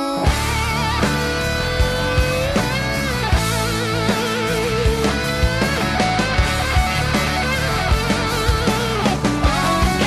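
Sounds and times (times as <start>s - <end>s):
lead electric guitar with vibrato: 0.0s - 10.0s
steady drums: 0.2s - 10.0s.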